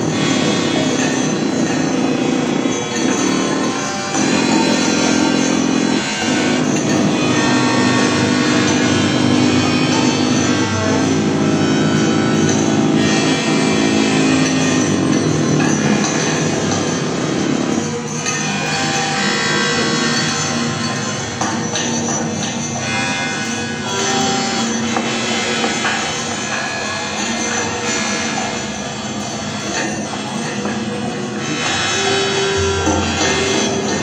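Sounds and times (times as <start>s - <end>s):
electronic drones: 0.0s - 34.0s.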